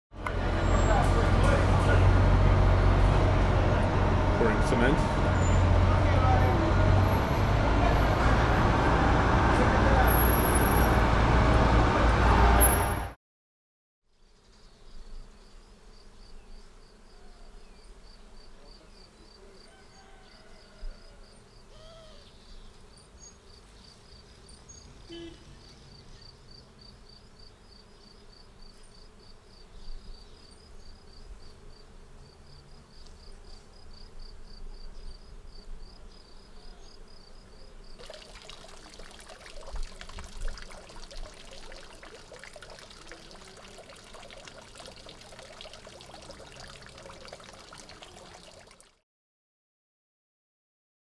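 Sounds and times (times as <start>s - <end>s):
faint workers' voices: 0.2s - 2.6s
diesel paving machinery droning: 0.2s - 13.1s
crickets chirping: 25.9s - 48.6s.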